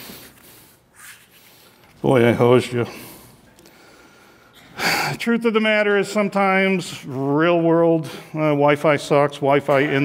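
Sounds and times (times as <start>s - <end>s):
man's sharp intake of breath: 2.9s - 5.2s.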